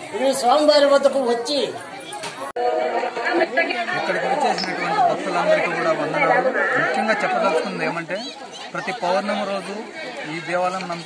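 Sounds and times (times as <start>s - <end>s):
people talking: 0.0s - 11.0s
voices chattering: 0.0s - 11.0s.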